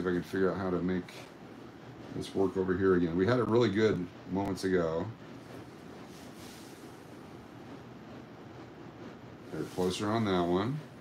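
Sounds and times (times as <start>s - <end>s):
low room noise hiss: 0.0s - 11.0s.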